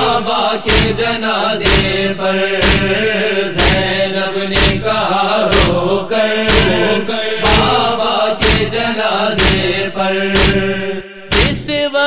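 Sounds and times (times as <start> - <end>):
rhythmic chest-beating: 0.0 - 11.9
men chanting a lament: 0.0 - 12.0.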